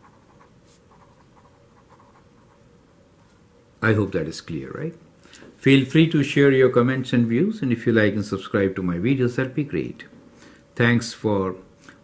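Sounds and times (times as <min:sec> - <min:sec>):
marker scratching on paper: 0:00.0 - 0:02.6.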